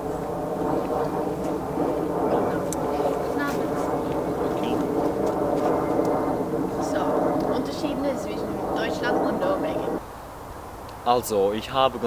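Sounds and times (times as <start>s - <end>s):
droning hum: 0.0s - 12.0s.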